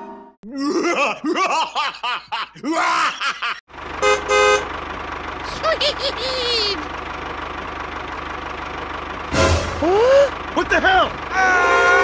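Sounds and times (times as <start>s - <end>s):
tractor engine running: 3.7s - 12.0s
horn toots: 4.0s - 4.8s, 9.3s - 10.2s, 11.3s - 12.0s
loud burst of sound: 9.3s - 10.3s.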